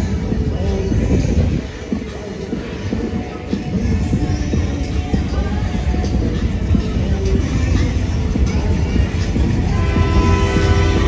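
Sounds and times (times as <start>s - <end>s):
bass-heavy street noise: 0.0s - 11.0s
horn-like chord: 9.7s - 11.0s.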